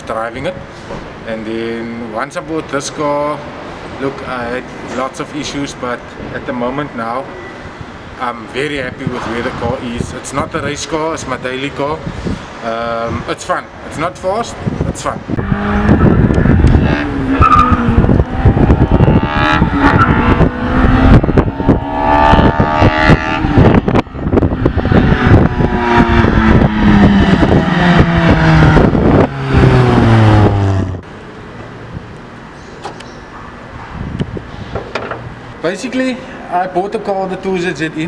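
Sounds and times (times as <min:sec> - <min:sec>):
car engine accelerating hard: 0:15.3 - 0:31.0.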